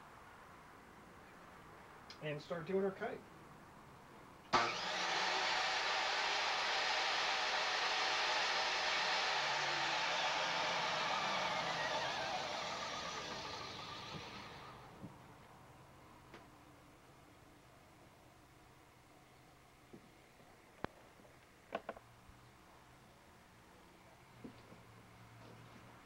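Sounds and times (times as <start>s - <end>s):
miter saw running: 4.5s - 15.0s.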